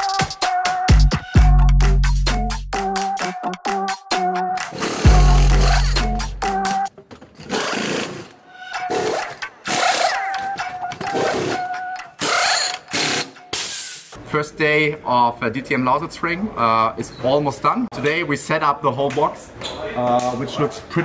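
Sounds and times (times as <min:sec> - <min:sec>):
electronic music: 0:00.0 - 0:06.9, 0:07.6 - 0:13.5
pneumatic wheel guns rattling: 0:07.2 - 0:14.2.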